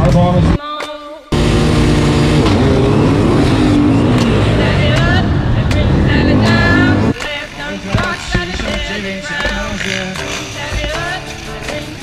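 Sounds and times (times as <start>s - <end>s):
motorcycle engine revving: 1.3s - 8.8s.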